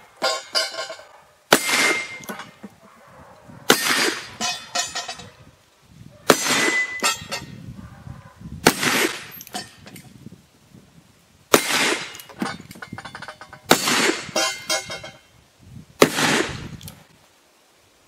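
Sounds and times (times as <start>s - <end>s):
metal target clanging and rattling: 0.0s - 2.8s, 3.7s - 5.4s, 6.3s - 7.6s, 8.7s - 10.1s, 11.6s - 15.3s
revolver shots: 1.5s - 2.3s, 8.6s - 9.4s.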